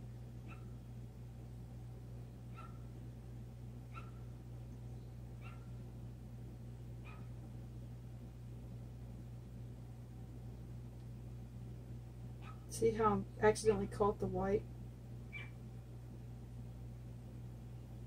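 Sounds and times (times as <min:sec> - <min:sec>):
steady low hum: 0:00.0 - 0:18.0
pet whining: 0:05.4 - 0:05.8, 0:15.3 - 0:15.6.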